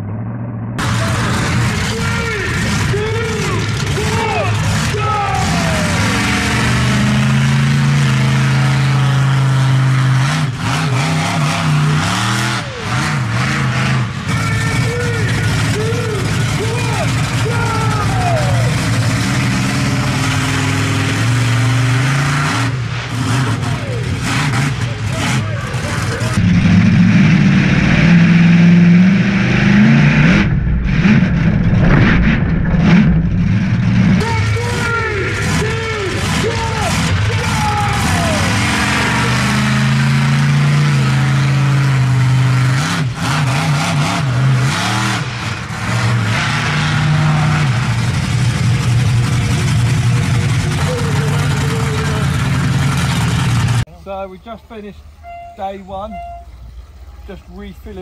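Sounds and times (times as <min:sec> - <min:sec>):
monster truck engines revving: 0:00.0 - 0:58.0.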